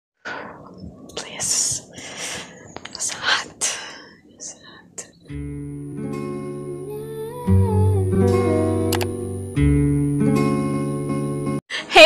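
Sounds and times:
woman whispering: 0.6s - 2.0s, 2.7s - 5.2s
acoustic guitar music: 5.2s - 11.6s.

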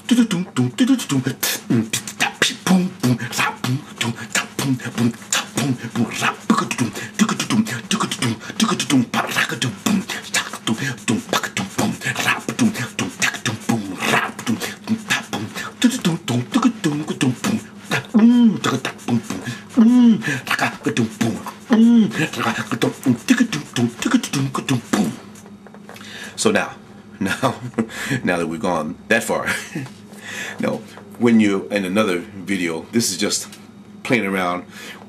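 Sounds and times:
pitched vocal notes: 0.0s - 25.4s
man beatboxing: 0.0s - 25.5s
man laughing: 10.6s - 25.2s, 27.2s - 28.3s, 29.3s - 30.0s.

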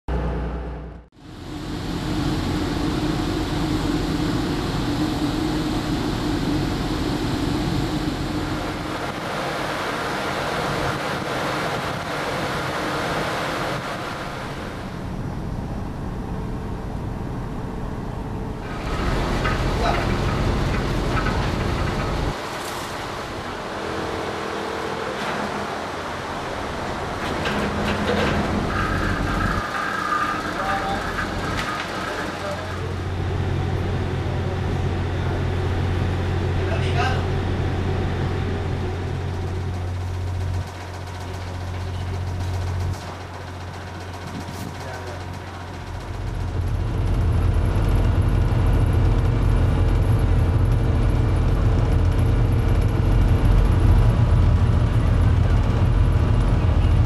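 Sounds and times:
machinery hum and rumble: 0.1s - 57.0s.

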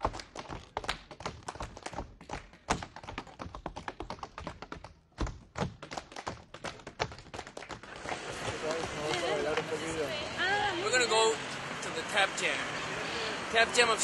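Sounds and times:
tap shoes on hard floor: 0.0s - 9.7s.

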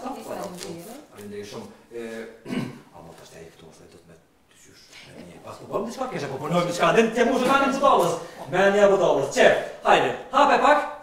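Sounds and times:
man talking: 1.2s - 11.0s.

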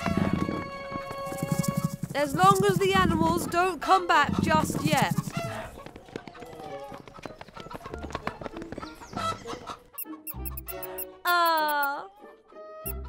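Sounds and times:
cartoon background music: 9.2s - 13.0s
quick ticks: 10.0s - 11.9s
animal sound effects: 10.0s - 12.0s.

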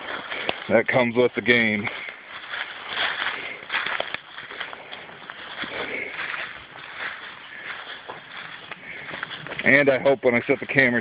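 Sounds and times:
footsteps through dry leaves: 0.0s - 11.0s.

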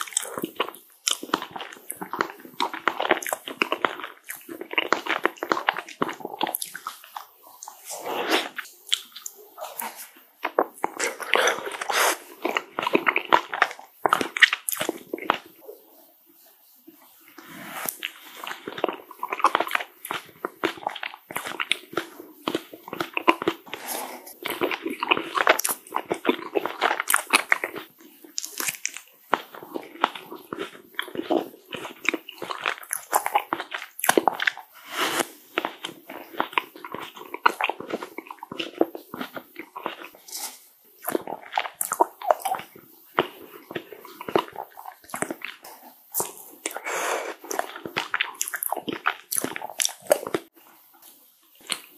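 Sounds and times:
crunchy chewing: 0.0s - 15.8s, 17.2s - 51.9s
wet mouth sounds: 0.0s - 50.7s, 51.5s - 51.9s.

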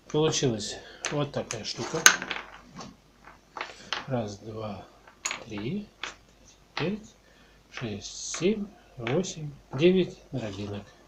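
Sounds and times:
rustling: 1.0s - 11.0s.

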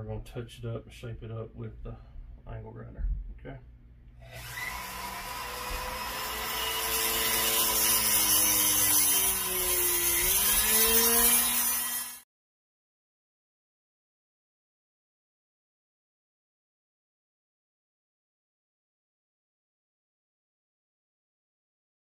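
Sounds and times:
rotary tool grinding steel: 4.2s - 12.2s.

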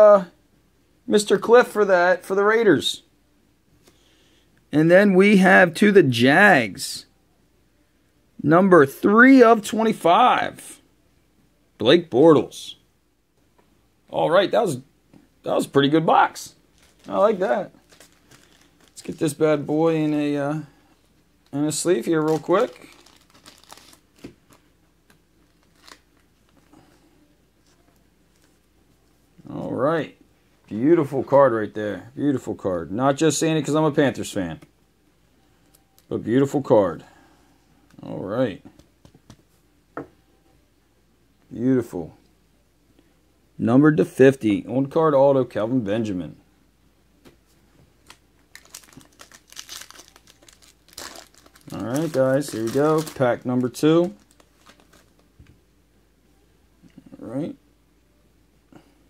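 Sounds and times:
plastic card sleeve crinkling: 16.7s - 20.3s, 21.4s - 24.7s, 25.4s - 26.7s, 48.0s - 55.3s.

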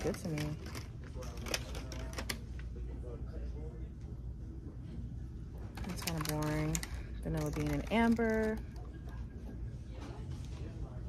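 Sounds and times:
steady low hum: 0.0s - 11.0s
faint background voices: 8.4s - 11.0s.

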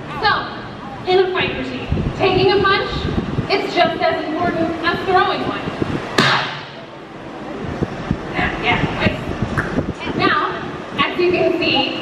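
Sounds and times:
sharp punch smack with echo: 6.2s - 6.8s.

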